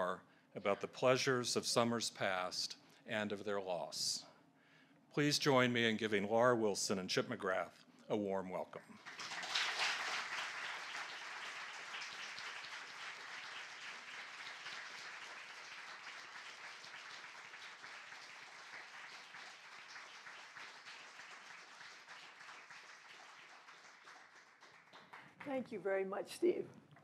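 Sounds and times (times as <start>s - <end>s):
audience applauding: 9.0s - 25.6s.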